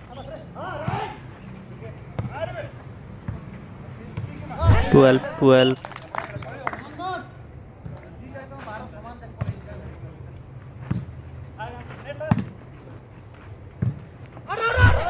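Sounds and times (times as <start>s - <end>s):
distant players shouting: 0.1s - 3.5s, 4.2s - 5.8s, 14.4s - 15.0s
volleyball being struck: 4.6s - 5.2s.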